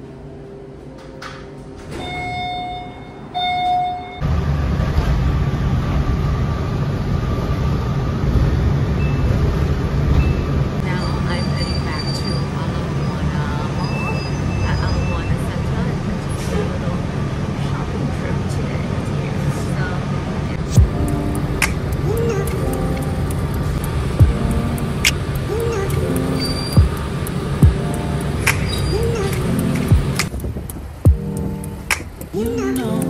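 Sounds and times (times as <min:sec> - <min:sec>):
bus rumbling: 0:00.0 - 0:33.0
elevator chime: 0:01.8 - 0:04.3, 0:09.0 - 0:09.4, 0:10.1 - 0:15.4, 0:25.6 - 0:29.4.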